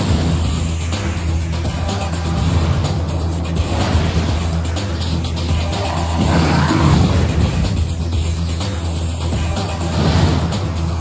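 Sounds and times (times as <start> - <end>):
dramatic trailer score: 0.0 - 11.0
steady low drone: 0.0 - 11.0
rushing swell: 0.3 - 8.6.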